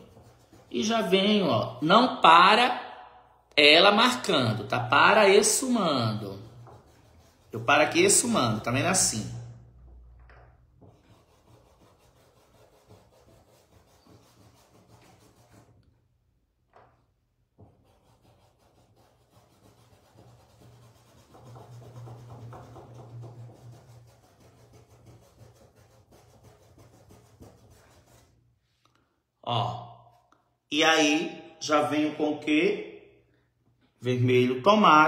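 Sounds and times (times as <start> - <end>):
paintbrush rubbing on fabric: 0.0 - 1.3, 5.1 - 9.3, 10.8 - 15.9, 17.6 - 28.8.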